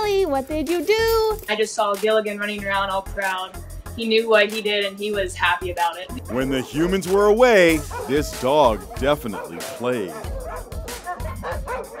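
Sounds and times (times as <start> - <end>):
dog yipping: 6.0 - 12.0
music with low beat: 6.1 - 12.0.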